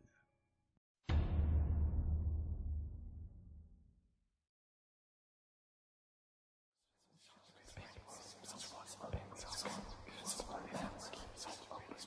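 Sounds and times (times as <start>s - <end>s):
whispering voices: 7.0s - 12.0s.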